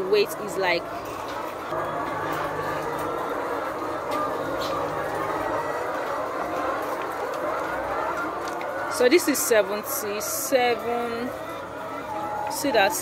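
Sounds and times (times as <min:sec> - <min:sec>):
hens clucking: 0:00.0 - 0:13.0.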